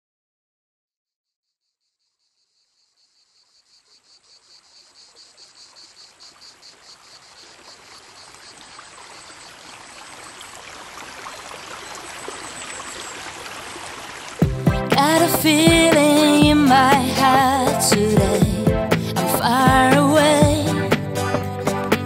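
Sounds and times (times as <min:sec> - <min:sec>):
crickets chirping: 0:01.6 - 0:14.4
rushing stream water: 0:04.7 - 0:19.2.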